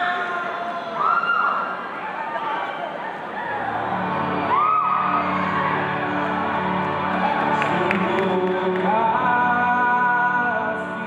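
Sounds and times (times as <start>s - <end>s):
high-pitched whoops: 2.4s - 7.7s.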